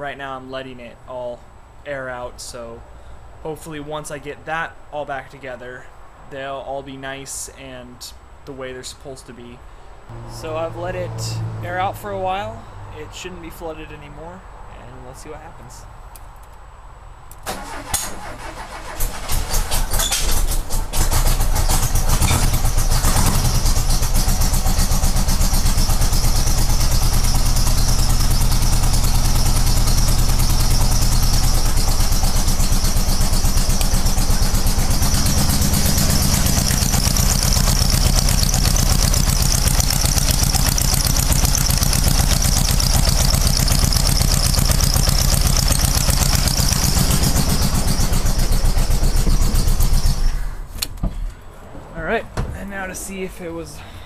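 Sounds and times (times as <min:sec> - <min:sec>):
car engine running unevenly: 0:21.0 - 0:50.3.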